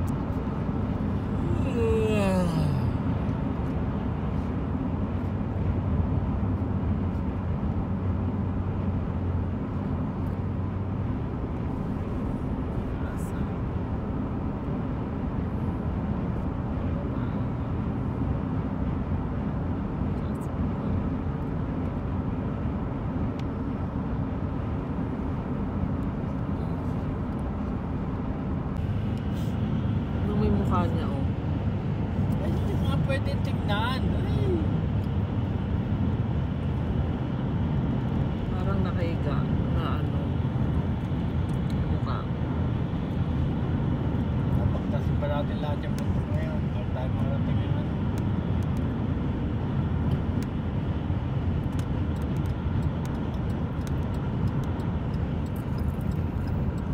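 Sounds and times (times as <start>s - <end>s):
car road and engine noise: 0.0s - 56.9s.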